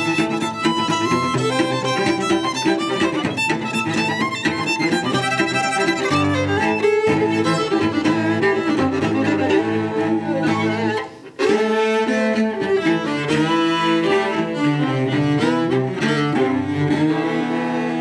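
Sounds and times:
bowed cello: 0:00.0 - 0:18.0
fiddle melody: 0:00.0 - 0:18.0
low string accompaniment: 0:00.0 - 0:18.0.

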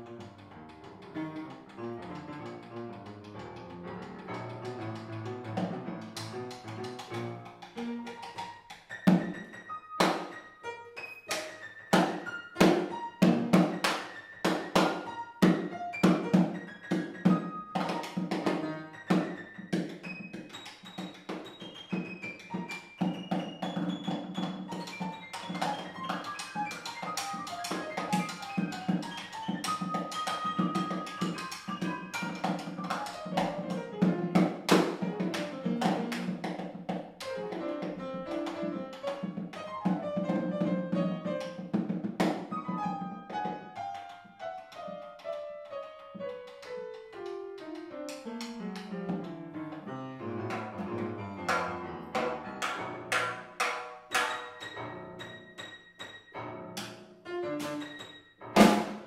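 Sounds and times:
damped snare drum strikes: 0:12.0 - 0:13.9, 0:51.5 - 0:54.6, 0:58.6 - 0:59.0.

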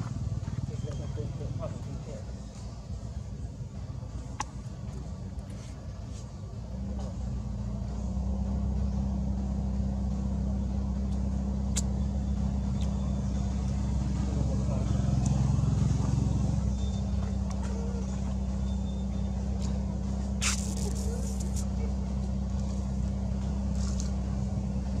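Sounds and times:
engine idling hum: 0:00.0 - 0:25.0
sharp click: 0:11.7 - 0:12.0
faint voices: 0:13.4 - 0:23.1.

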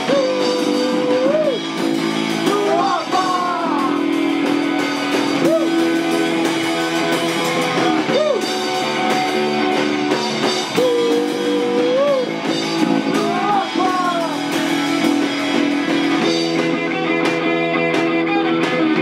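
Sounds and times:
punk band playing live: 0:00.0 - 0:19.0.

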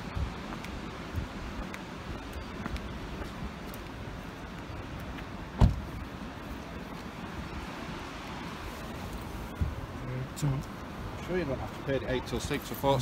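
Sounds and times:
traffic noise: 0:00.0 - 0:13.0
wind: 0:00.0 - 0:13.0.

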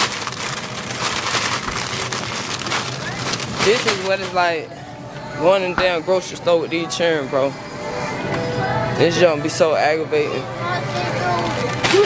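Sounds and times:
crackling and rustling: 0:00.0 - 0:04.6.

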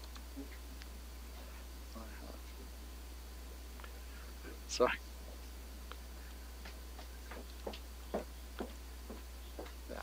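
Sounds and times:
low electrical hum: 0:00.0 - 0:10.0
footsteps tapping on hard floor: 0:06.6 - 0:09.8.

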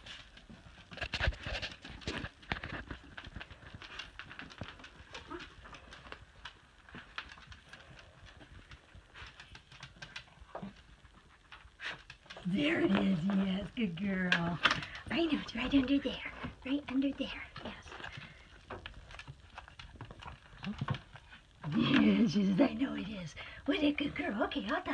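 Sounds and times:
dog claws clicking on hard floor: 0:00.0 - 0:17.1, 0:17.9 - 0:21.6.

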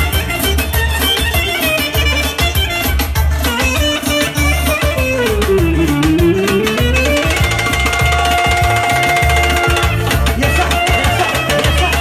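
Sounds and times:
hand drums: 0:00.0 - 0:12.0
steady bass beat: 0:00.0 - 0:12.0.

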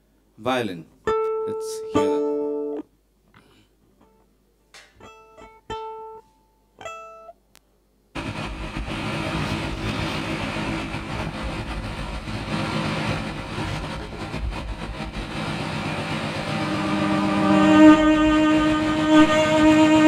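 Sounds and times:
violin notes: 0:01.1 - 0:02.8, 0:15.3 - 0:20.0
loud electronic noise track: 0:08.2 - 0:20.0.

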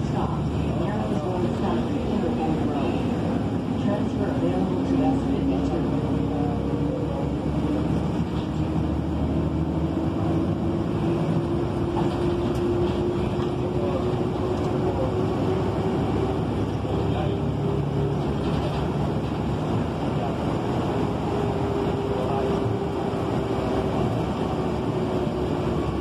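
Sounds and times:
bus engine and road rumble: 0:00.0 - 0:26.0.

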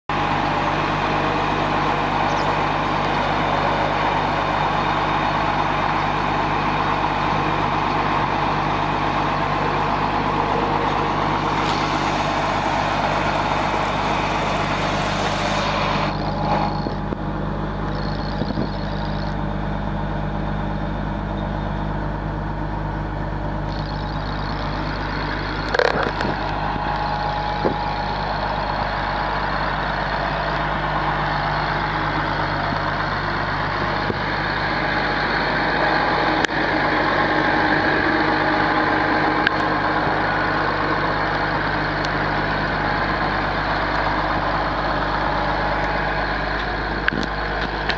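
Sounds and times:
diesel truck engine running: 0:00.0 - 0:47.9
loud hiss: 0:11.2 - 0:16.4.

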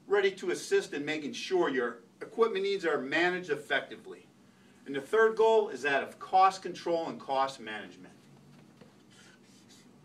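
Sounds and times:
low room hum: 0:00.0 - 0:10.0
marker pen scratching paper: 0:08.8 - 0:10.0.

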